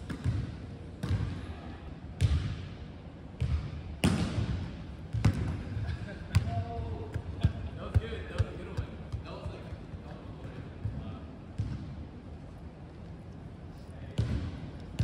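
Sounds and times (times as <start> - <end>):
basketballs bouncing on wooden floor: 0.1 - 0.4, 1.0 - 1.2, 5.1 - 5.6, 11.6 - 11.9, 14.2 - 15.0.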